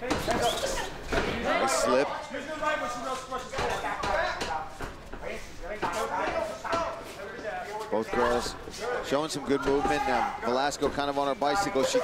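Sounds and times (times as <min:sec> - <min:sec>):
people shouting: 0:08.8 - 0:10.5.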